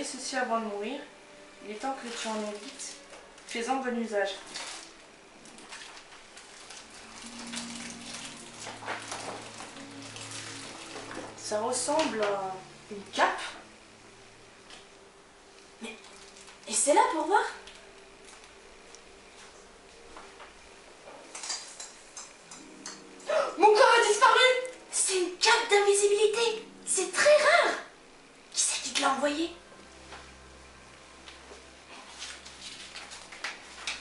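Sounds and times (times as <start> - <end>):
low steady hum: 0.0 - 34.0
blanket rustling: 1.7 - 11.7, 31.4 - 34.0
wrapping paper crackling and tearing: 1.8 - 11.5, 15.8 - 19.2, 31.9 - 34.0.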